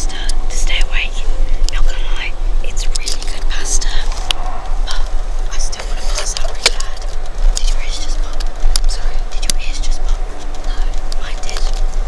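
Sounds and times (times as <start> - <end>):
people whispering: 0.0 - 11.9
coach engine drone: 0.0 - 12.0.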